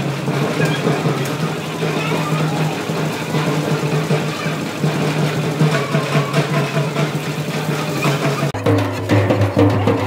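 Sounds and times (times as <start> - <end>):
crowd din: 0.0 - 10.0
music: 0.0 - 10.0.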